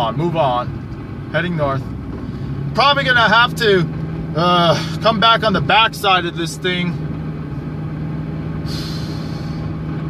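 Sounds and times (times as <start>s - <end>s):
car engine drone inside cabin: 0.0s - 10.0s
road noise: 0.0s - 10.0s
brief hiss: 8.7s - 9.6s.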